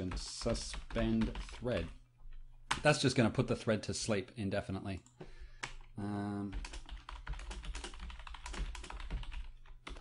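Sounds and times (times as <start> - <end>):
fast typing on keyboard: 0.0 - 2.0, 5.6 - 10.0.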